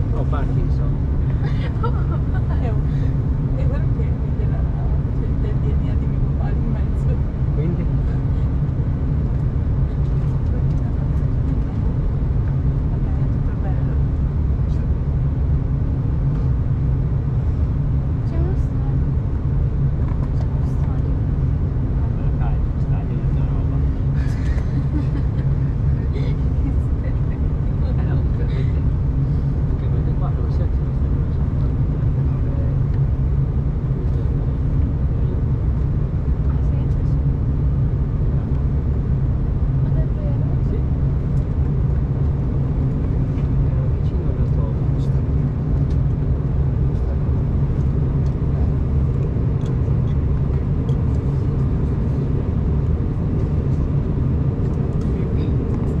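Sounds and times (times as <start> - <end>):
aircraft cabin engine drone: 0.0 - 56.0.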